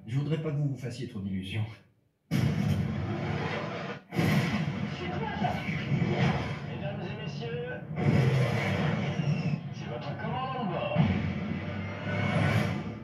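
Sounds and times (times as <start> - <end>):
man speaking: 0.0 - 1.9
trailer music: 2.3 - 7.2, 7.8 - 13.0.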